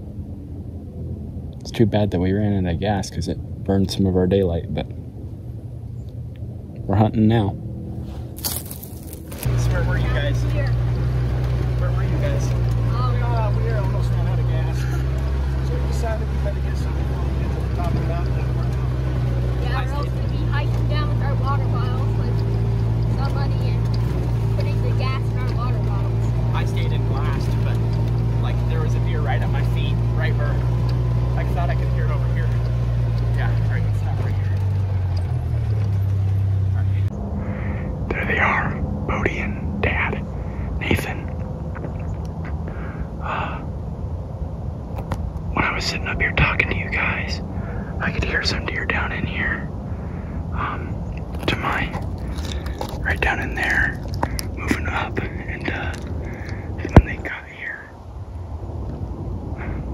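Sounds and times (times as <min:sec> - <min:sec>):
utility vehicle engine running: 0:00.0 - 0:59.9
indistinct voices: 0:50.5 - 0:57.9.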